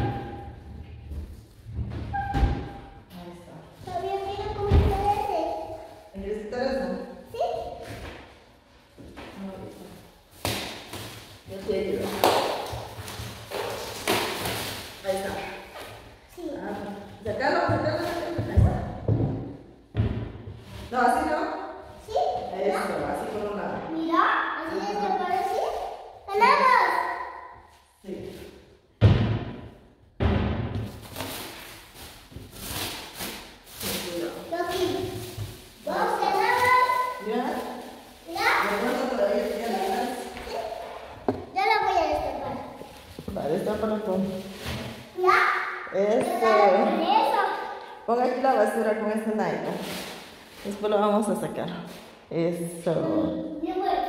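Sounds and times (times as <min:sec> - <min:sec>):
voices in room: 0:00.0 - 0:54.0
wooden panel knocks and thuds: 0:17.6 - 0:20.6, 0:29.0 - 0:31.0.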